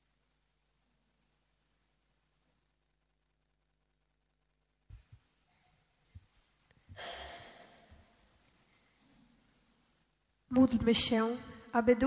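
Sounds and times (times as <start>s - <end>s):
hissy breath exhalation: 6.9s - 7.9s.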